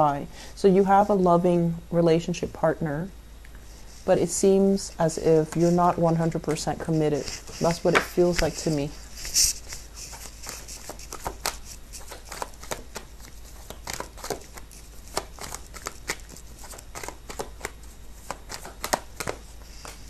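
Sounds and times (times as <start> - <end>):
cards being shuffled: 5.3 - 20.0.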